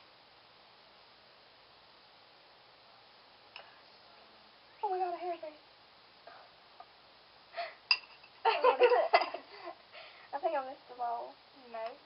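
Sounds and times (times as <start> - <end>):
spoon tapping glass bowl: 7.9 - 9.0
girls giggling: 8.4 - 9.8.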